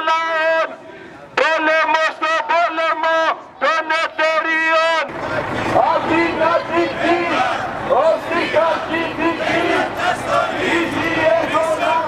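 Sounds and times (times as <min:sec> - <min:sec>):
man chanting through a megaphone: 0:00.0 - 0:05.1, 0:05.7 - 0:12.0
crowd chanting: 0:05.2 - 0:12.0.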